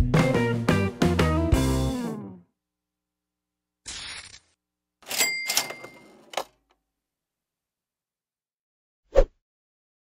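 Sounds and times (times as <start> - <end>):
cash register ka-ching: 5.0 - 6.7.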